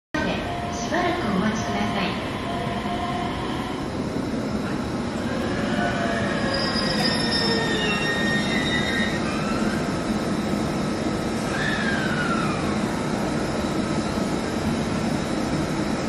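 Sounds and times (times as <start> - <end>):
train running rumble: 0.2 - 16.0
train wheels squealing: 5.5 - 10.0.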